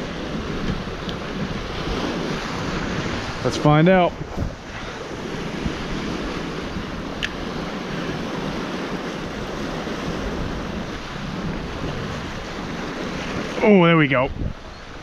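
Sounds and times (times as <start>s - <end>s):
surf washing over rocks: 0.0s - 15.0s
wind buffeting microphone: 0.0s - 15.0s.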